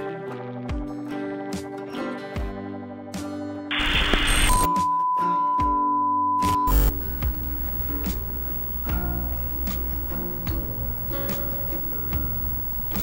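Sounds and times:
music: 0:00.0 - 0:13.0
static hiss burst: 0:03.7 - 0:04.7, 0:06.7 - 0:13.0
strummed guitar: 0:06.7 - 0:13.0.

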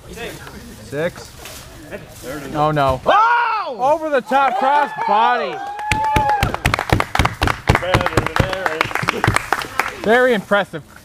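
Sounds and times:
crowd clapping: 0:04.4 - 0:10.3.

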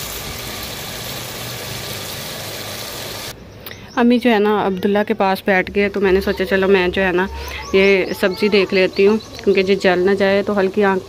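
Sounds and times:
curry sizzling in a pot: 0:00.0 - 0:03.4.

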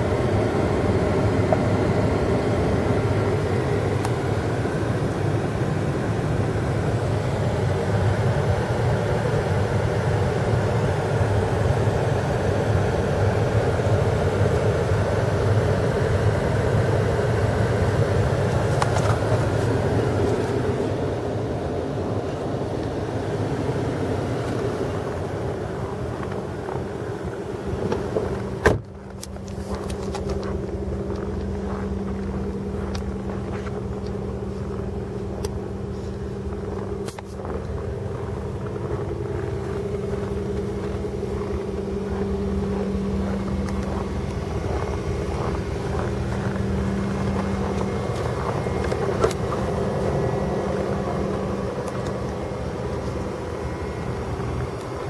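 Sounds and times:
car engine idling: 0:00.0 - 0:55.0
car door shutting: 0:27.8 - 0:30.4.

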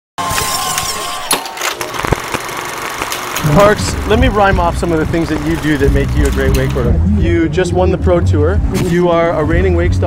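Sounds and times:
sharp clicks: 0:01.6 - 0:06.9
small motor running: 0:02.0 - 0:06.9.

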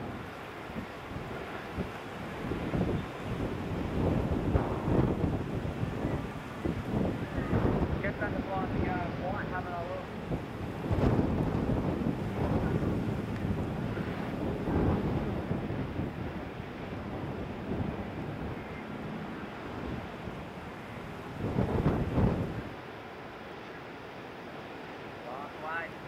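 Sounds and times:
wind buffeting microphone: 0:00.0 - 0:23.1
ocean surf breaking: 0:00.0 - 0:26.0.

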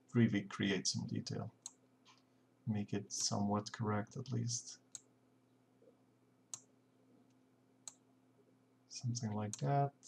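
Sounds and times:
faint steady hum: 0:00.0 - 0:10.0
computer mouse clicks: 0:07.3 - 0:08.0.

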